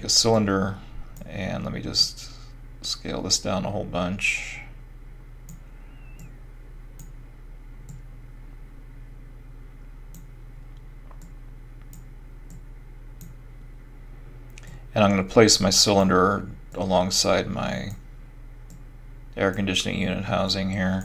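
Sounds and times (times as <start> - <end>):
low electrical hum: 0.0 - 21.0
computer mouse clicking: 5.4 - 6.4, 7.0 - 7.2, 11.1 - 12.6.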